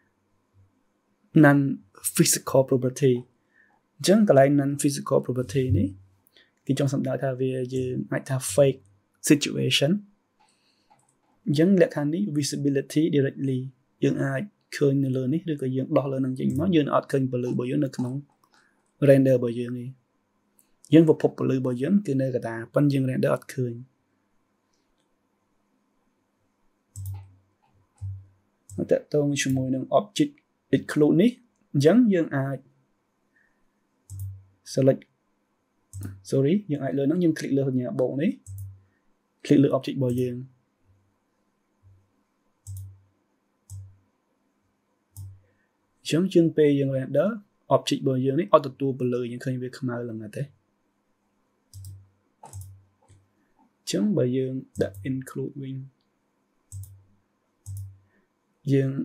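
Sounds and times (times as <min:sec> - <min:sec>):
person speaking: 0:01.4 - 0:03.2, 0:04.0 - 0:06.0, 0:06.7 - 0:10.1, 0:11.5 - 0:18.3, 0:19.0 - 0:20.0, 0:20.9 - 0:23.9, 0:28.0 - 0:32.6, 0:34.1 - 0:35.0, 0:36.0 - 0:38.7, 0:39.4 - 0:40.5, 0:46.1 - 0:50.5, 0:53.9 - 0:55.9, 0:58.7 - 0:59.0
computer mouse clicks: 0:10.4 - 0:11.4, 0:17.5 - 0:19.0, 0:26.9 - 0:29.6, 0:34.1 - 0:34.5, 0:35.9 - 0:36.2, 0:38.0 - 0:38.9, 0:42.6 - 0:43.1, 0:43.7 - 0:44.0, 0:45.1 - 0:45.5, 0:51.7 - 0:53.8, 0:54.8 - 0:55.1, 0:56.7 - 0:58.1.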